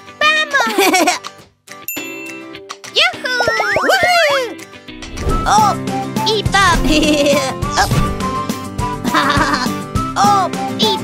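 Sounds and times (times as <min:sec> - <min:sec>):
light cartoon background music: 0:00.0 - 0:11.0.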